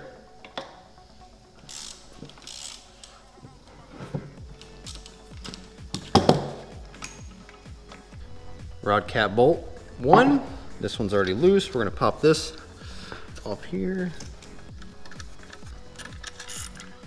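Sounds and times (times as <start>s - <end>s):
hand ratchet clicking: 1.6s - 3.2s, 4.6s - 6.1s, 14.1s - 17.0s.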